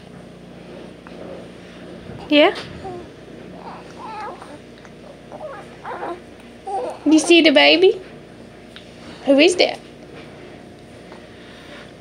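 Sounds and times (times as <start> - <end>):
baby cooing: 2.8 - 7.5.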